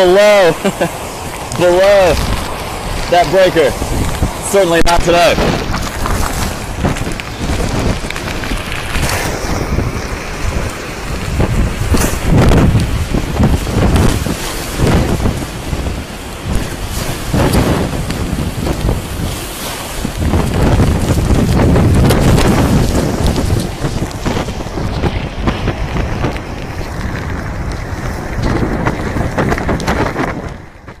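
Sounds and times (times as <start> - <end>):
gusting wind on microphone: 0.0 - 31.0
waves breaking on concrete wall: 0.0 - 31.0.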